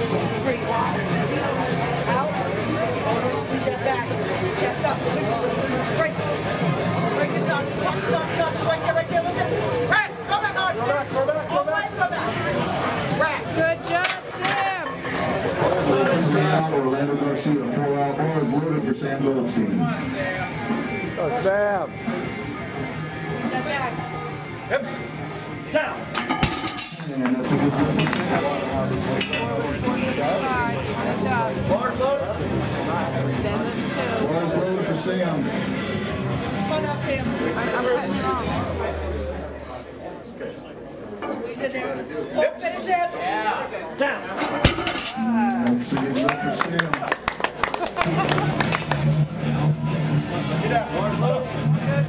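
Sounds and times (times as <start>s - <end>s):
crowd voices: 0.0s - 52.0s
spectators cheering and talking: 0.0s - 52.0s
audience clapping and cheering: 45.4s - 49.3s.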